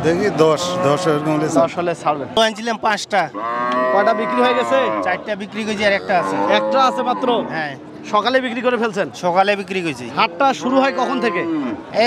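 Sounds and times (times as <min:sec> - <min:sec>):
cow mooing: 0:00.6 - 0:01.6, 0:03.3 - 0:07.8, 0:10.2 - 0:12.0.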